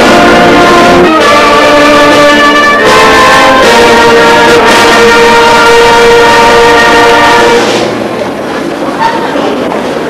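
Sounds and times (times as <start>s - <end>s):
brass band sustained chord: 0.0s - 8.2s.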